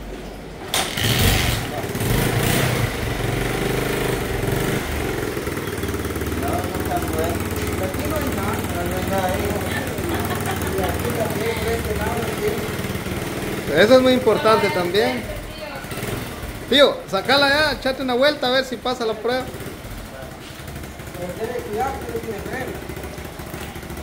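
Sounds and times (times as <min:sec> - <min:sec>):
motorcycle engine starting and idling: 0:00.2 - 0:24.0.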